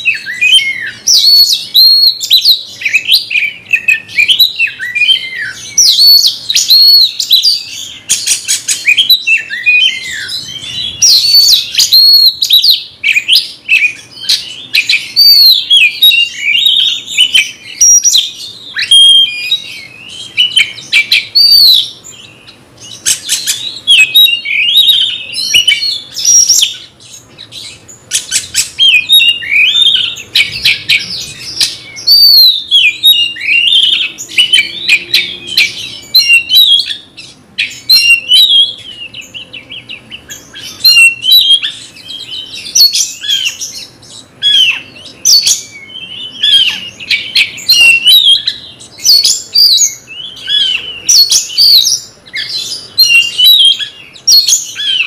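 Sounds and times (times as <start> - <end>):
songbird whistling and chattering: 0.0 - 55.0.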